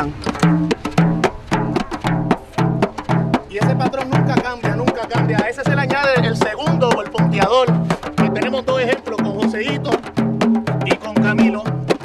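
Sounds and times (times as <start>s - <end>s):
frame drum played by hand: 0.0s - 12.0s.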